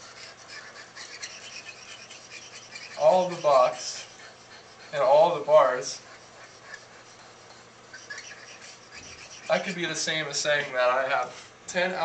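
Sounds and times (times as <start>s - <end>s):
pen scribbling on whiteboard: 0.0s - 11.6s.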